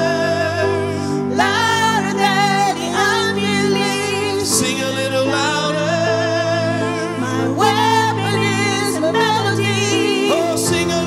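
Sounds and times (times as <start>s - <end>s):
keyboard chords: 0.0s - 11.0s
people singing worship song: 0.0s - 11.0s.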